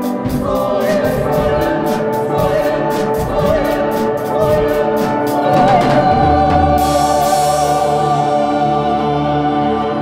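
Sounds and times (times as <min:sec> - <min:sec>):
choir holding a chord: 0:00.0 - 0:10.0
instrumental backing: 0:00.0 - 0:10.0.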